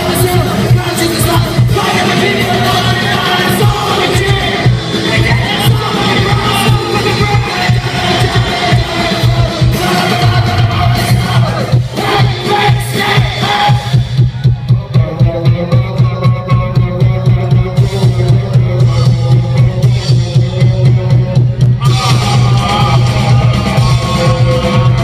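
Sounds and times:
punk rock band playing: 0:00.0 - 0:25.0
crowd shouting along: 0:01.8 - 0:14.7.

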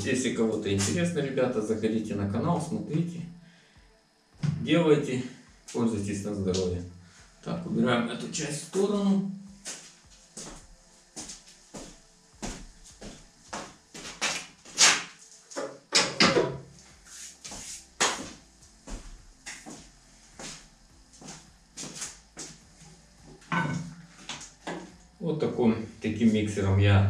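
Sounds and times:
footsteps: 0:00.0 - 0:01.1, 0:09.5 - 0:15.7, 0:16.8 - 0:25.2.

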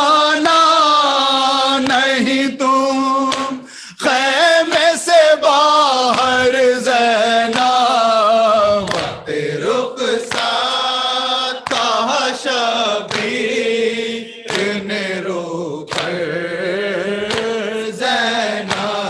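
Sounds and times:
men chanting in unison: 0:00.0 - 0:19.0
rhythmic chest-beating: 0:00.0 - 0:19.0.

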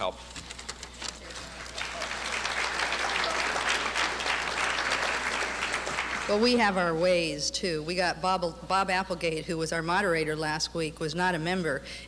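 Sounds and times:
audience applause: 0:01.2 - 0:07.0.

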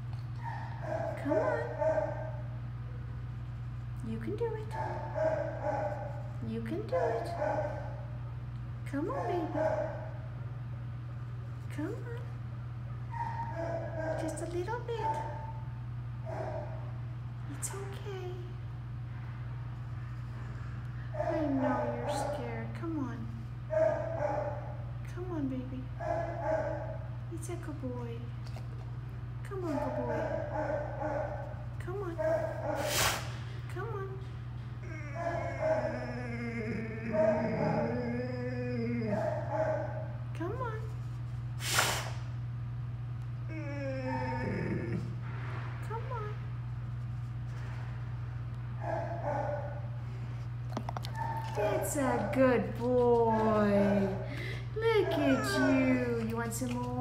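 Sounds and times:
steady low hum: 0:00.0 - 0:57.0
dog whimpering: 0:34.8 - 0:39.6, 0:43.5 - 0:45.1, 0:51.0 - 0:56.3
short noisy burst: 0:41.6 - 0:42.2.

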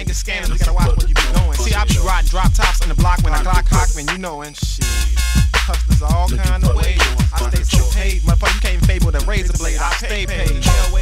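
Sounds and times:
deep bass kicks: 0:00.0 - 0:11.0
rapping over a beat: 0:00.0 - 0:11.0.

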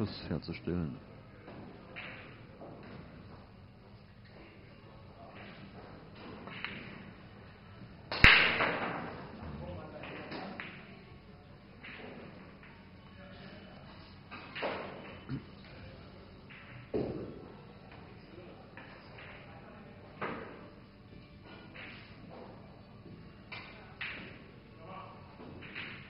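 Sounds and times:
faint room murmur: 0:00.0 - 0:26.0
pool balls clicking: 0:01.5 - 0:03.6, 0:05.2 - 0:13.1, 0:13.8 - 0:19.6, 0:20.2 - 0:24.7, 0:25.3 - 0:26.0
pool ball sharp knock: 0:08.1 - 0:10.8.

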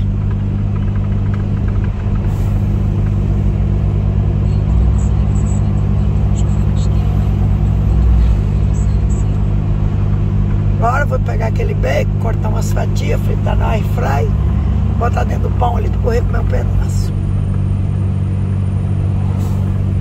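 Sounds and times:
diesel truck engine drone: 0:00.0 - 0:20.0
road noise: 0:00.0 - 0:20.0.

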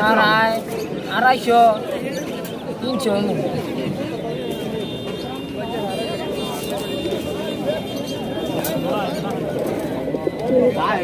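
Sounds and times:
many people talking: 0:00.0 - 0:11.0.

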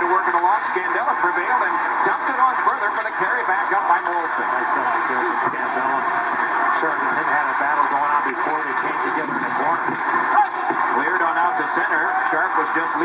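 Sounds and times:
sports commentator on television: 0:00.0 - 0:13.0.

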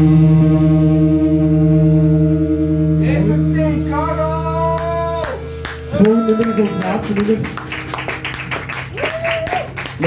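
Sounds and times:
electric guitar chord ringing: 0:00.0 - 0:10.0.

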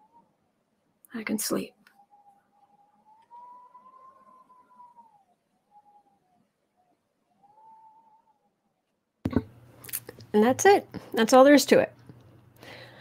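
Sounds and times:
faint thin whistling tone: 0:00.0 - 0:00.4, 0:01.5 - 0:08.8.

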